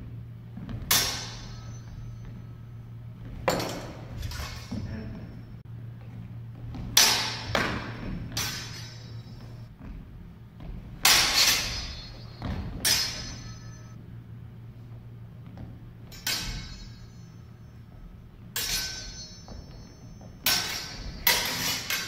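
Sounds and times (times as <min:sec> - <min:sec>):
steady low hum: 0:00.0 - 0:22.0
steel swords clashing: 0:00.8 - 0:05.6, 0:06.9 - 0:09.6, 0:11.0 - 0:14.0, 0:16.0 - 0:22.0.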